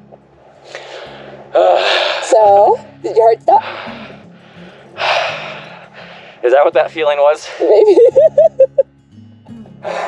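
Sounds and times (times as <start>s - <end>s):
person breathing sharply: 0.6s - 2.4s, 3.6s - 6.4s.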